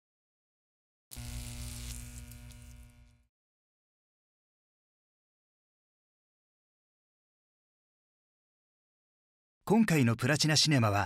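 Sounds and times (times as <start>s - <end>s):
low steady hum: 1.2s - 3.2s.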